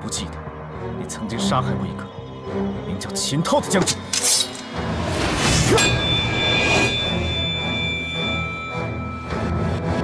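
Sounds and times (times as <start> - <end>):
low droning music: 0.0 - 10.0
sword blades ringing: 5.6 - 9.4.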